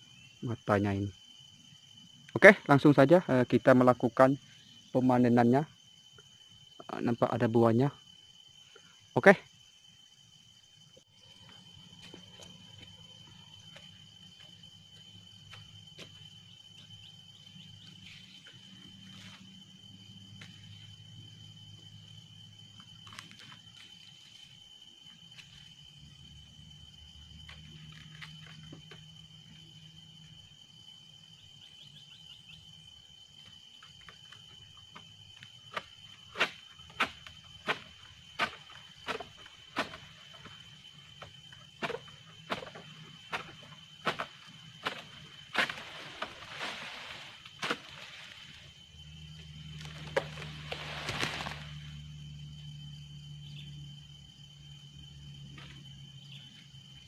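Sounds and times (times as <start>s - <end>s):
high insect drone: 0.0s - 57.0s
sickle blade cutting stalk: 35.8s - 40.1s, 41.8s - 46.9s, 47.5s - 48.4s.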